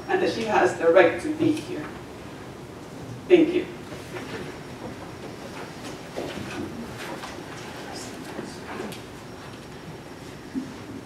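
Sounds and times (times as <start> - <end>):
low room noise: 0.0 - 11.0
faint footsteps: 3.8 - 11.0.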